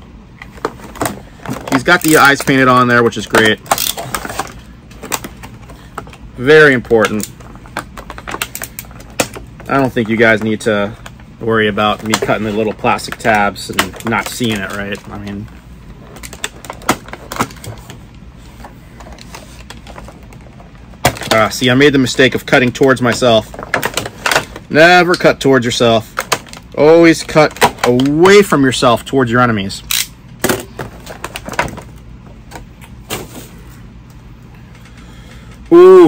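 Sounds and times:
plastic handling: 0:00.3 - 0:28.5, 0:29.9 - 0:35.8
toy packaging rustling: 0:00.4 - 0:28.3, 0:30.7 - 0:32.0
plastic packaging clicks and snaps: 0:03.2 - 0:06.2, 0:06.9 - 0:10.0.

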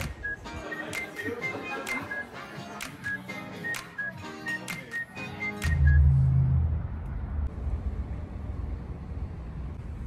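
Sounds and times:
low outdoor rumble: 0:05.8 - 0:10.0.

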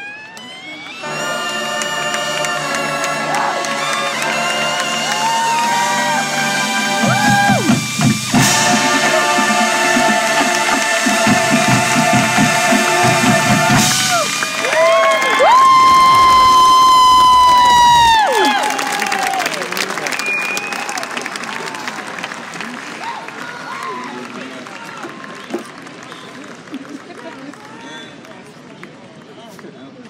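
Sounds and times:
crowd applause and cheering: 0:00.0 - 0:28.6
brass and drums playing chords: 0:00.9 - 0:15.1.

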